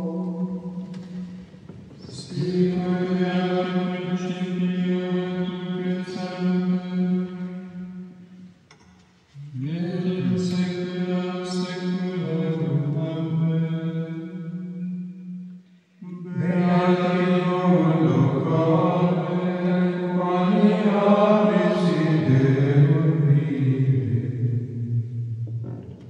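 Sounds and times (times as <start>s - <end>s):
men chanting plainchant in unison: 9.5s - 13.4s, 16.0s - 24.2s.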